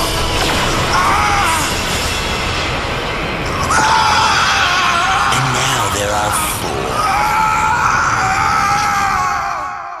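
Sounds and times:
long drawn-out scream: 0:00.8 - 0:01.8, 0:03.5 - 0:10.0.

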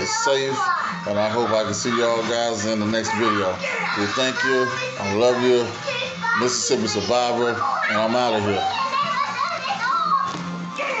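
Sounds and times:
children's voices: 0:00.0 - 0:11.0
music playing: 0:00.0 - 0:11.0.

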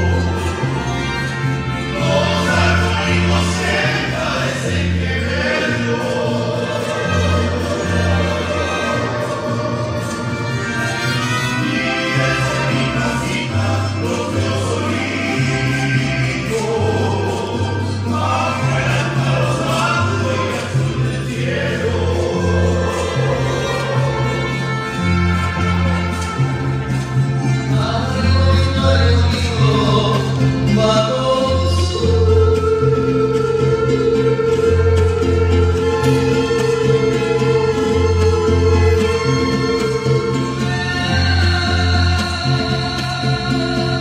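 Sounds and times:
violins: 0:00.0 - 0:44.0
men singing together: 0:01.6 - 0:26.2, 0:27.5 - 0:44.0.

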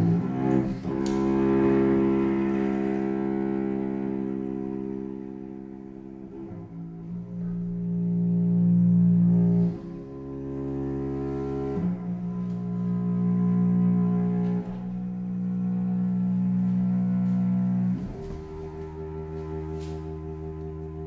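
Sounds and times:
low bowed strings: 0:00.0 - 0:21.0.

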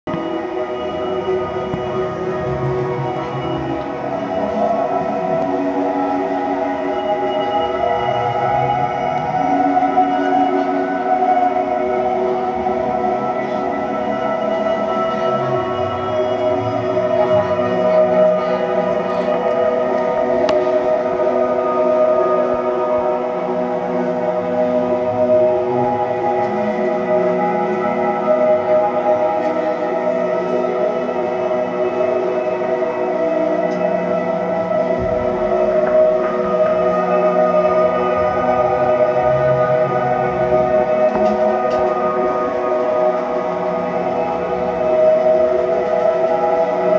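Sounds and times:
band playing sustained droning tones: 0:00.1 - 0:46.9.

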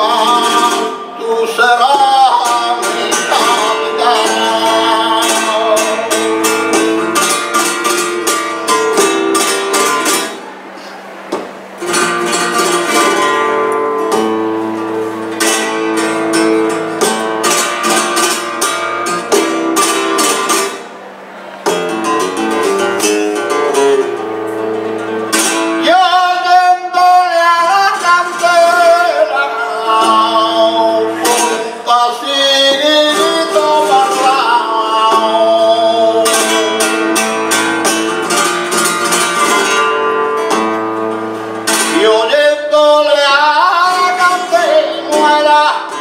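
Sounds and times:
man singing flamenco: 0:00.0 - 0:10.5, 0:11.8 - 0:20.9, 0:21.6 - 0:46.0
flamenco guitar playing: 0:00.0 - 0:46.0.

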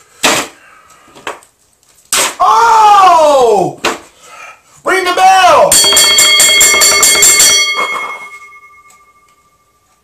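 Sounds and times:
ring bell rung rapidly: 0:05.7 - 0:09.6.

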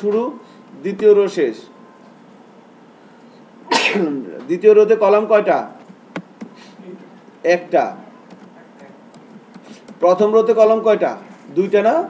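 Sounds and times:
person sneezing: 0:03.7 - 0:04.2.

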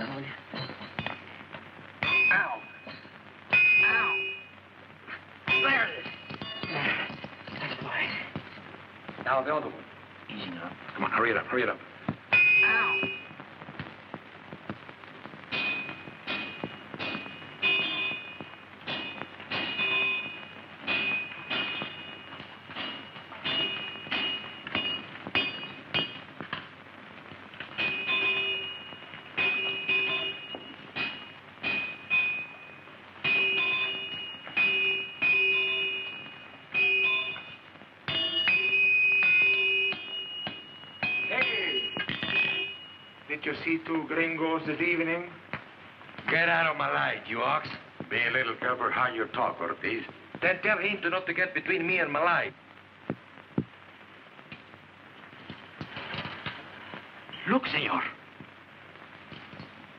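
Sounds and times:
hammer clanging on anvil: 0:15.5 - 0:26.2, 0:27.7 - 0:32.5.

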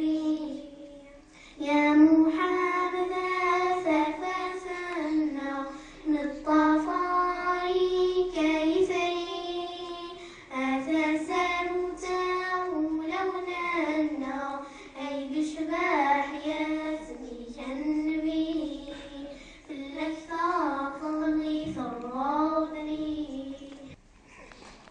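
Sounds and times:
girls singing unaccompanied: 0:00.0 - 0:24.0.

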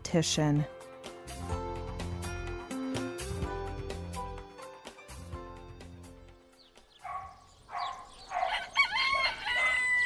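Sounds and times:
rooster crowing: 0:07.8 - 0:10.0.

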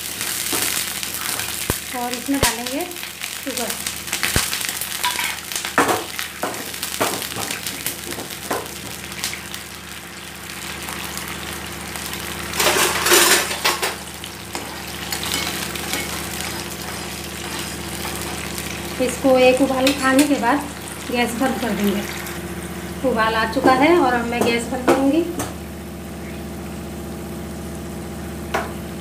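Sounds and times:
liquid boiling in a frying pan: 0:00.0 - 0:29.0.

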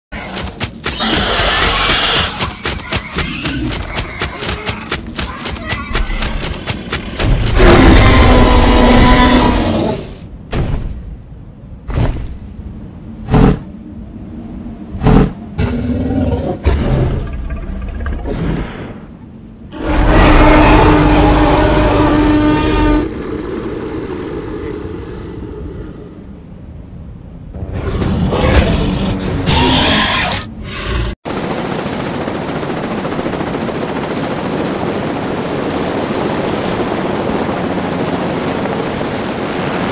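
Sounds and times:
sharp clicks and thuds: 0:00.2 - 0:08.1
horn-like cinematic tone: 0:19.7 - 0:23.4.

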